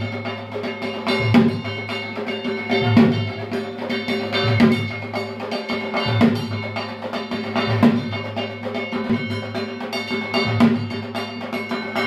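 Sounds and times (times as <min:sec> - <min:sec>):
metal bell struck rapidly: 0:00.0 - 0:12.0.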